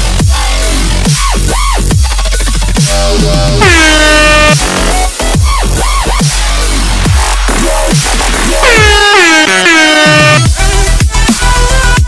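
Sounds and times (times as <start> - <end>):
dubstep electronic music: 0.0 - 12.0
heavy sliding bass hits: 2.8 - 10.7
air horn blasting: 3.6 - 5.0, 8.6 - 10.5.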